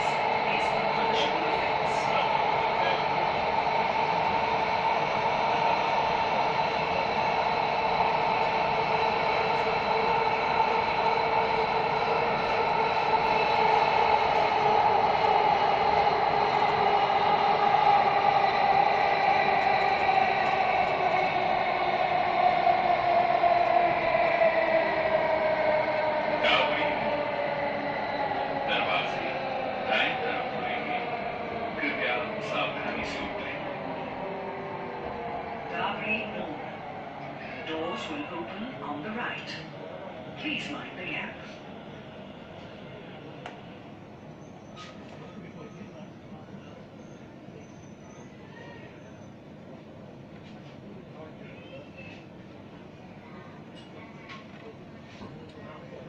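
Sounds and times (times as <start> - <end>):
train traction motor whine: 0.0 - 44.9.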